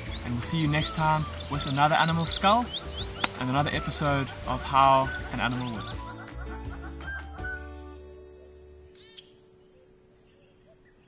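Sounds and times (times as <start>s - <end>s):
bird call: 0.0s - 7.7s, 8.9s - 11.0s
background music held chord: 0.0s - 10.2s
faint bird chirps: 0.0s - 11.0s.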